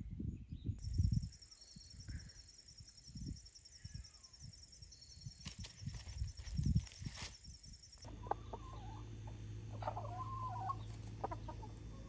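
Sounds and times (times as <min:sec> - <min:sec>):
steady low hum: 0:07.8 - 0:12.0
hens clucking: 0:08.1 - 0:12.0.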